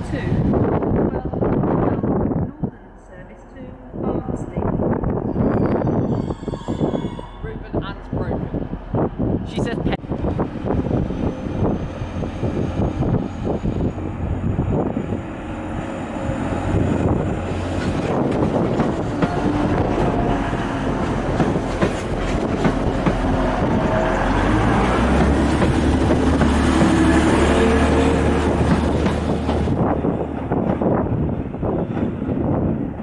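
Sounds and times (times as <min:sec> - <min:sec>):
diesel train engines running: 0:07.5 - 0:33.0
train wheels clicking on rail joints: 0:17.5 - 0:30.9.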